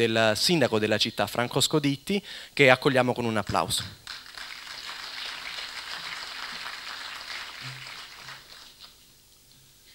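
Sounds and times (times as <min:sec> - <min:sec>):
audience clapping: 0:03.6 - 0:09.0.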